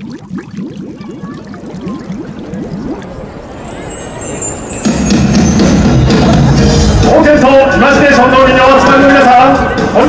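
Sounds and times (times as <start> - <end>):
bubbling water-drop bloops: 0.0 - 3.5
bright high chiming tones: 2.9 - 6.5.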